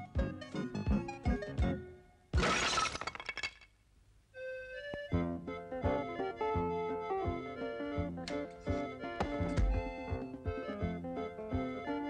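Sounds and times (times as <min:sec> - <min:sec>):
jaunty cartoon music: 0:00.0 - 0:02.1, 0:04.4 - 0:12.0
glass shattering crash: 0:02.4 - 0:03.7.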